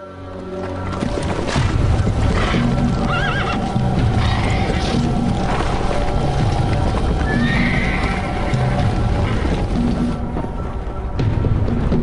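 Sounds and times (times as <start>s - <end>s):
music: 0.0s - 12.0s
hoofbeats: 0.2s - 12.0s
horses neighing: 1.6s - 10.2s.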